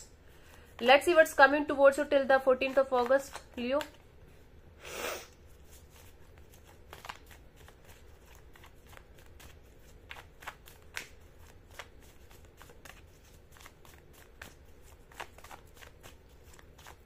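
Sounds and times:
cards being shuffled: 2.4s - 4.1s, 5.5s - 17.0s.

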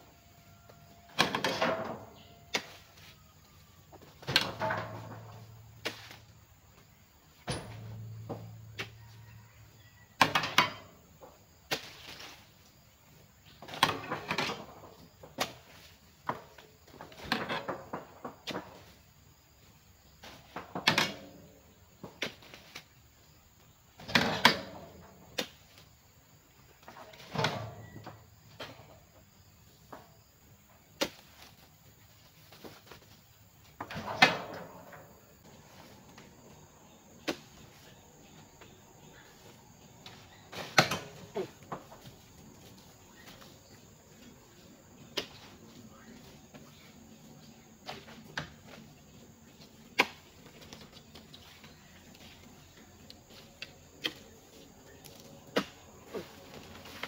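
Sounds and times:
fruit bunches thudding into truck bed: 40.1s - 42.2s.

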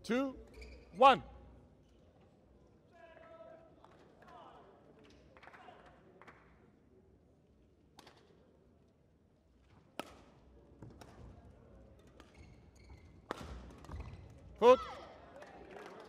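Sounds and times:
sports hall hush: 0.0s - 1.4s, 14.6s - 14.9s.

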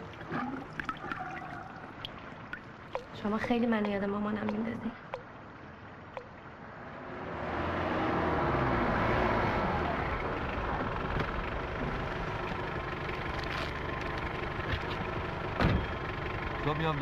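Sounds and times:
car engine running: 9.9s - 17.0s.

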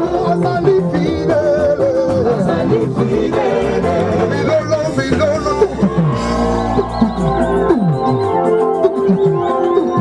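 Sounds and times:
people singing into microphones: 0.0s - 8.2s
live band music: 0.0s - 10.0s.

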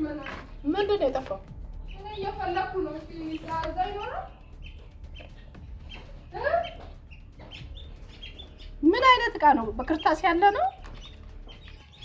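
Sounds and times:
woman's voice: 0.0s - 4.4s, 6.3s - 6.8s, 8.8s - 10.8s
small birds chirping: 0.0s - 12.0s.

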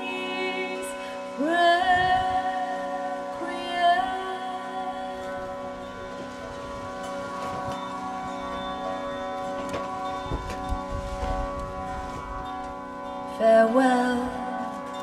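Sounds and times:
harmonium drone: 0.0s - 15.0s.

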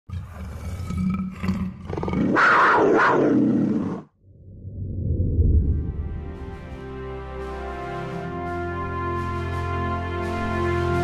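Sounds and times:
big cat growling: 0.1s - 4.1s.

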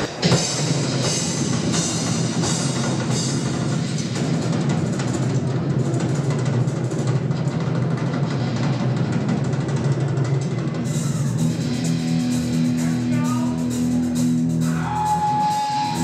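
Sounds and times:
drum kit played hard: 0.0s - 16.0s
heavy metal band playing live: 0.0s - 16.0s.

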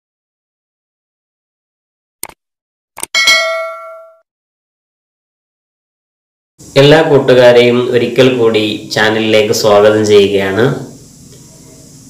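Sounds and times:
bright bell ding: 3.2s - 4.2s.

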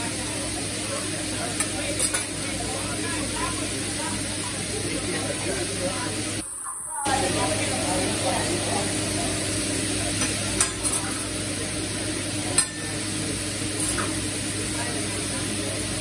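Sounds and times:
food sizzling on a griddle: 0.0s - 16.0s
metal utensils clicking on griddle: 1.6s - 2.3s, 10.2s - 11.2s, 12.5s - 12.9s, 13.8s - 14.2s.

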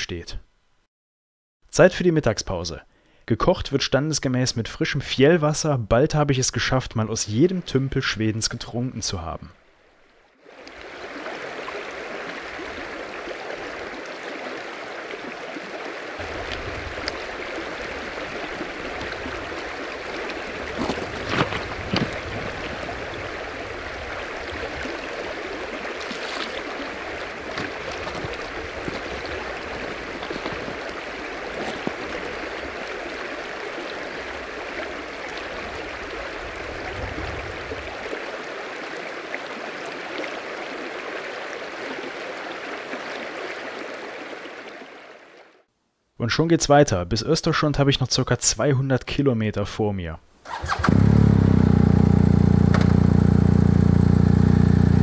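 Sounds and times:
river water rushing over stones: 10.4s - 45.4s.

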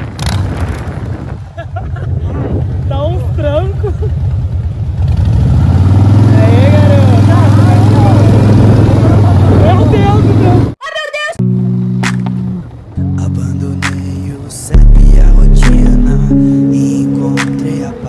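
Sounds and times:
motorcycle engine running: 2.7s - 10.8s
steady musical notes: 11.4s - 18.0s.

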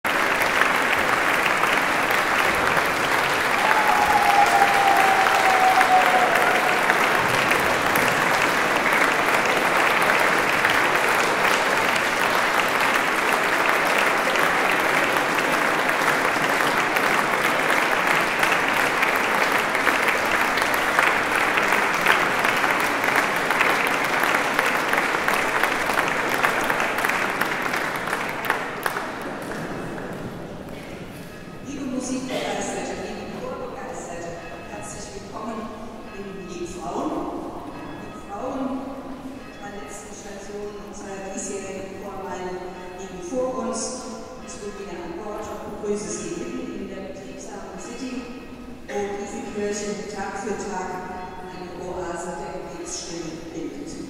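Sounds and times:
audience applauding: 0.0s - 31.4s.

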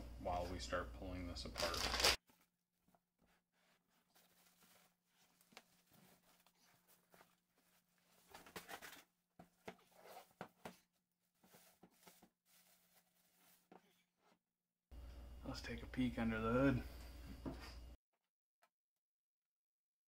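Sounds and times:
plastic bag rustling and crinkling: 1.4s - 2.2s.

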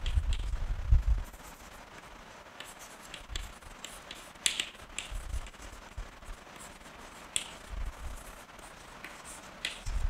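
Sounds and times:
chalk tapping and scratching: 0.0s - 0.6s, 1.2s - 10.0s.

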